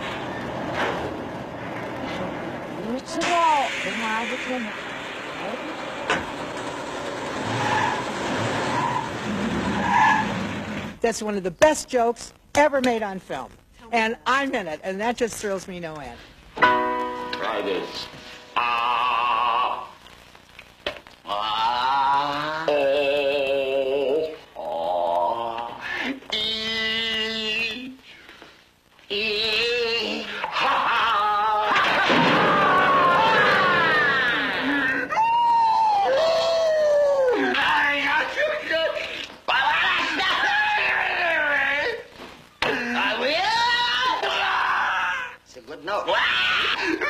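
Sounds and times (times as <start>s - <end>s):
high-pitched wordless wailing: 18.5s - 20.0s, 21.2s - 28.0s, 29.1s - 38.3s.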